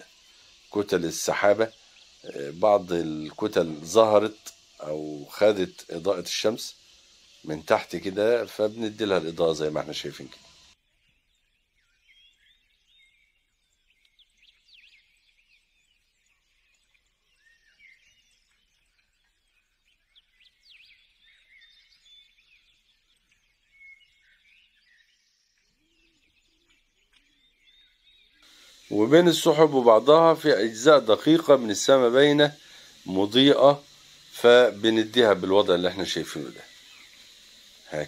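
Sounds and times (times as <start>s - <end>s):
faint birds chirping: 0.0s - 38.0s.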